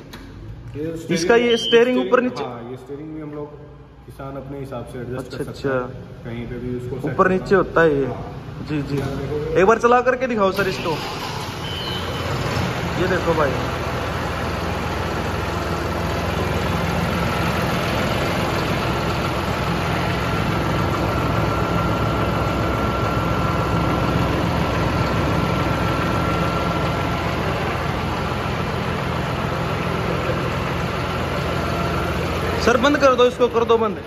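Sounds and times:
tractor diesel engine idling: 3.8 - 34.0.

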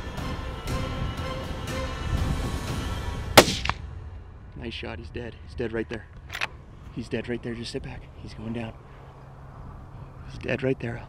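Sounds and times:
rifle shot crack: 3.4 - 3.9.

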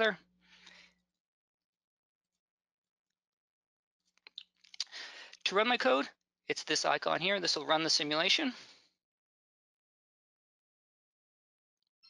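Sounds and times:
person speaking: 0.0 - 0.2, 4.8 - 8.7
mouth clicks and lip smacks: 4.2 - 5.4
soft intake of breath: 4.9 - 5.4.

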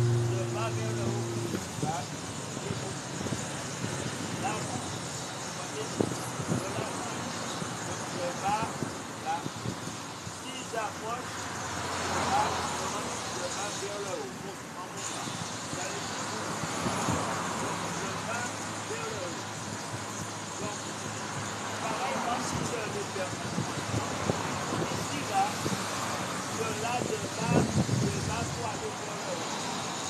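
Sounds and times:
man talking indistinctly: 0.0 - 3.3, 4.3 - 5.0, 5.6 - 7.3, 7.9 - 9.6, 10.4 - 11.3, 12.2 - 16.7, 17.7 - 19.5, 20.5 - 21.1, 21.7 - 25.7, 26.4 - 29.6
outdoor background noise: 0.0 - 30.0.

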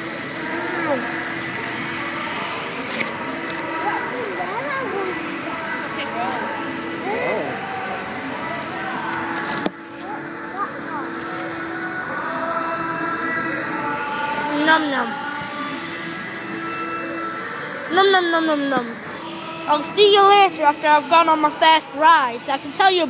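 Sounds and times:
babble of many voices: 0.0 - 23.0.

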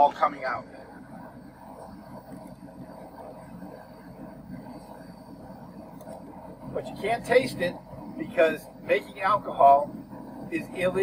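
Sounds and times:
propane burner rushing: 0.0 - 11.0.

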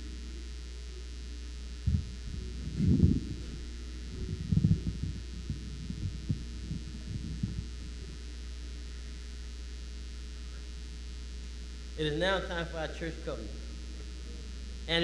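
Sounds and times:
low electrical hum: 0.0 - 15.0
microphone handling thumps: 1.8 - 9.3.

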